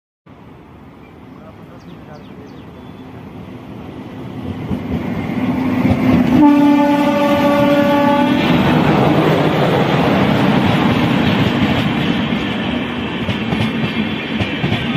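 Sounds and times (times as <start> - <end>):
train wheels rattling on rails: 0.9 - 14.9
train horn blast: 6.2 - 8.9.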